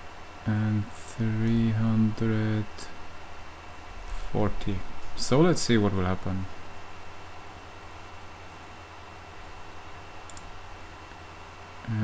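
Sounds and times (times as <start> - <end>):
low electrical hum: 0.0 - 12.0
computer mouse double click: 10.3 - 10.5.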